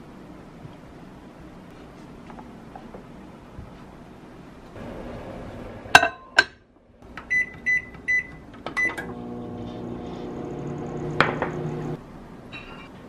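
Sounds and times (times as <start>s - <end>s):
microwave humming: 7.0s - 12.0s
keypad beeps: 7.3s - 9.0s.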